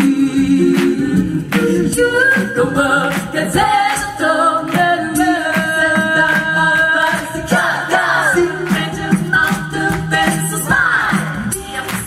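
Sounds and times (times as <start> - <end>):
percussive beat: 0.0 - 12.0
women singing a cappella: 0.0 - 12.0.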